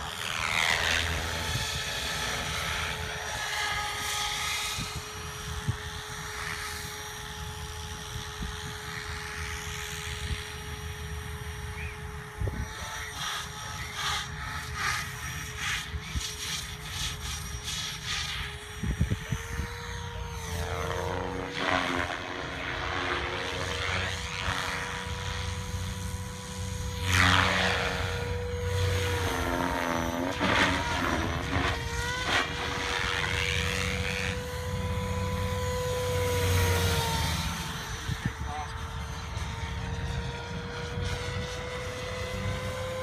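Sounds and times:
rc helicopter motor whine: 0.0s - 43.0s
rotor blade noise: 0.0s - 43.0s.

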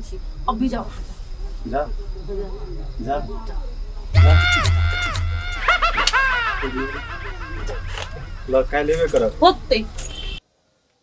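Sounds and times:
crickets chirping: 0.0s - 10.8s
person speaking: 4.2s - 9.7s.

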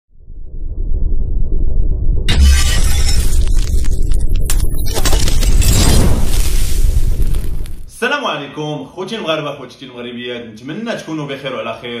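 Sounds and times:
glass shattering: 2.3s - 7.9s.

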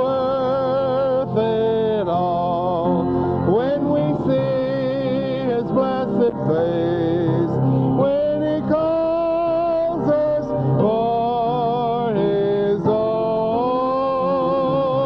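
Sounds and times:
gospel hymn singing: 0.0s - 15.0s
instrumental accompaniment: 0.0s - 15.0s.

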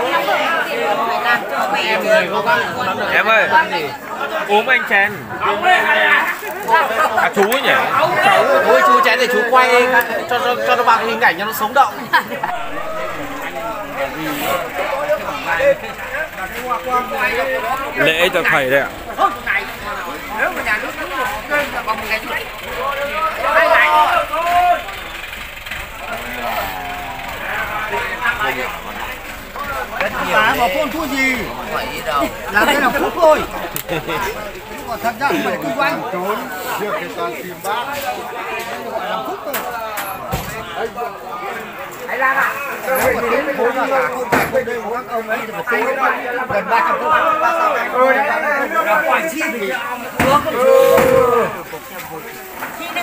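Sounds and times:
low background noise: 0.0s - 53.0s
people talking: 0.0s - 53.0s.

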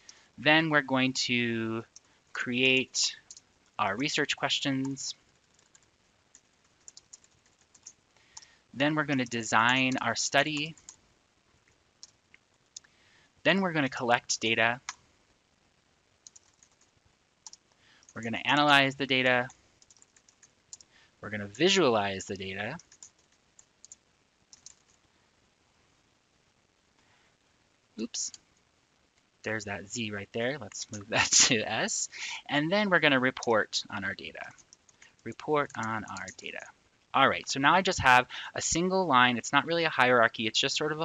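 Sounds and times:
computer keyboard typing: 3.2s - 3.5s, 4.8s - 8.5s, 12.0s - 12.9s, 16.2s - 18.2s, 19.4s - 20.9s, 22.7s - 25.1s, 34.4s - 36.7s.

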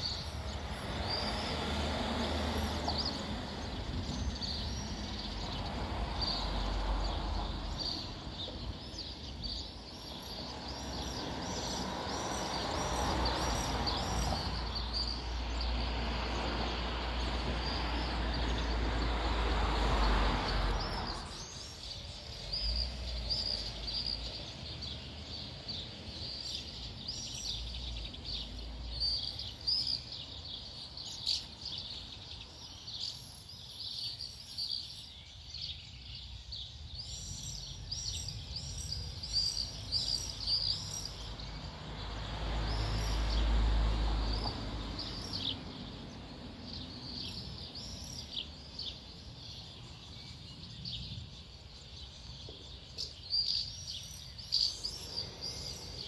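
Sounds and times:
swifts and martins calling: 0.0s - 56.0s.

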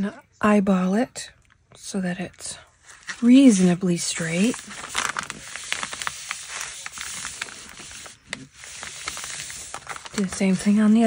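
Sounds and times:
paper rustling: 2.8s - 11.0s.

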